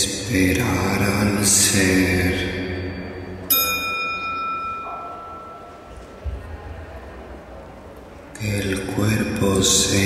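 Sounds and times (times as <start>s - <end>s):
bell ringing: 2.0s - 6.0s.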